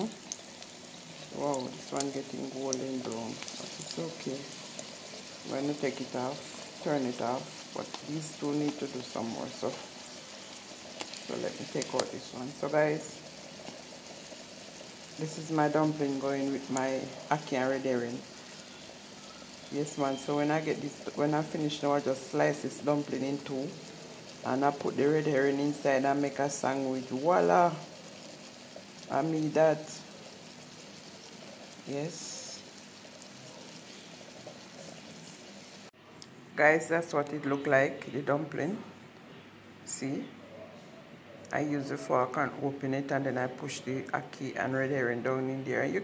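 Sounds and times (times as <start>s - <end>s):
dumplings sizzling in oil: 0.0s - 36.0s.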